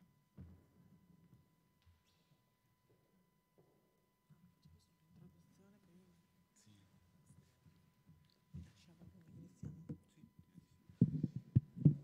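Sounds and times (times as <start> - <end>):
microphone handling thumps: 10.9 - 12.0.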